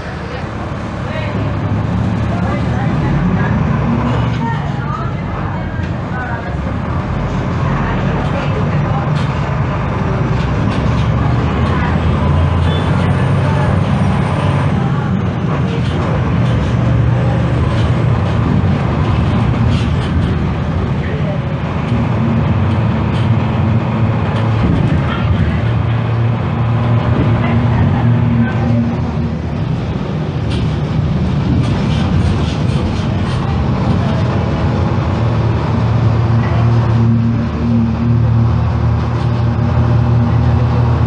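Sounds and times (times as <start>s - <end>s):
bus diesel engine droning: 0.0s - 41.0s.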